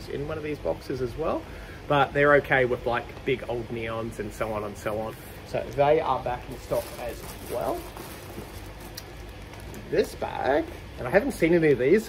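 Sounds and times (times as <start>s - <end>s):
person speaking: 1.9s - 8.0s
plastic bag crinkling: 5.6s - 10.6s.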